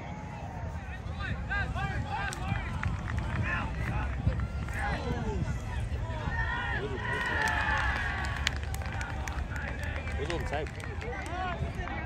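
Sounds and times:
voices shouting and calling out: 0:00.0 - 0:12.0
wind rumble on microphone: 0:00.0 - 0:12.0.

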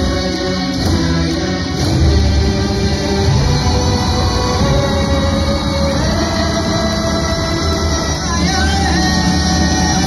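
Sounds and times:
ensemble holding sustained chord: 0:00.0 - 0:10.0
low drone: 0:00.0 - 0:10.0.

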